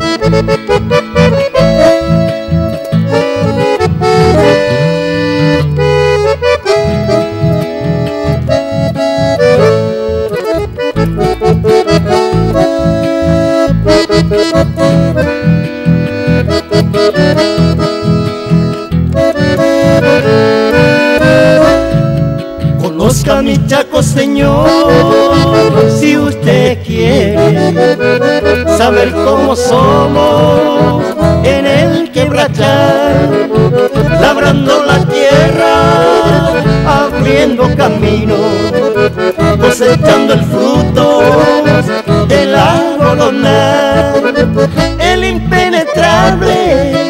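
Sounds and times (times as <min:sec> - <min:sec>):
accordion melody: 0:00.0 - 0:47.0
bass and rhythm accompaniment: 0:00.0 - 0:47.0.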